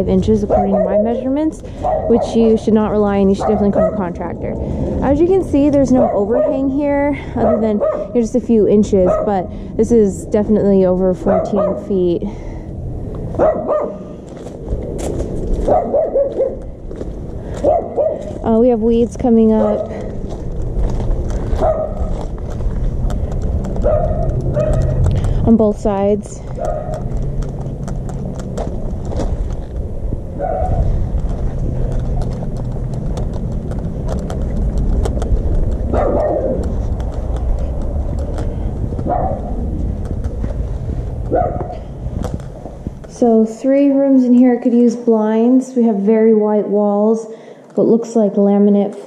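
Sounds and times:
low rumble: 0:00.0 - 0:44.4
dog barking: 0:00.5 - 0:02.5, 0:03.4 - 0:04.1, 0:05.9 - 0:06.7, 0:07.4 - 0:08.2, 0:09.0 - 0:09.5, 0:11.2 - 0:11.9, 0:13.4 - 0:14.1, 0:15.6 - 0:16.6, 0:17.6 - 0:18.3, 0:19.6 - 0:20.0, 0:21.5 - 0:22.2, 0:23.8 - 0:25.0, 0:26.6 - 0:27.1, 0:30.4 - 0:30.9, 0:35.9 - 0:36.7, 0:39.0 - 0:39.6, 0:41.3 - 0:41.8
footsteps on gravel: 0:13.1 - 0:43.5.

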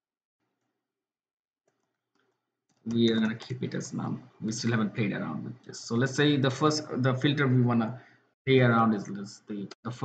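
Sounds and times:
person speaking: 0:02.9 - 0:10.0.

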